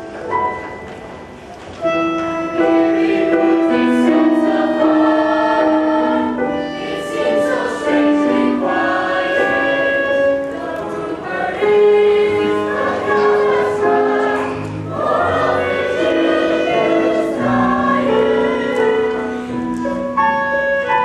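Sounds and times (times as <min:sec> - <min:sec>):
live instrumental accompaniment: 0:00.0 - 0:21.0
chorus of young voices singing: 0:02.6 - 0:20.0.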